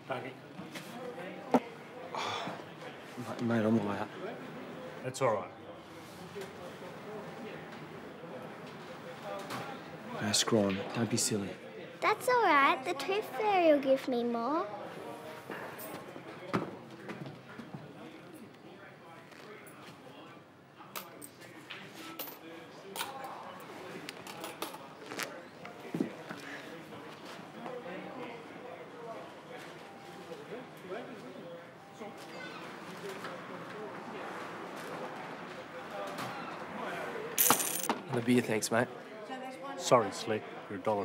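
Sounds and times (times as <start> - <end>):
faint background voices: 0.0 - 40.8
coins jingling on a counter: 37.4 - 37.9.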